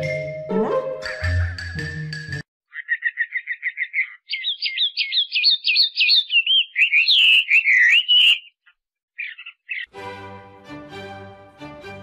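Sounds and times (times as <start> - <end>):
songbird singing: 2.7 - 9.9.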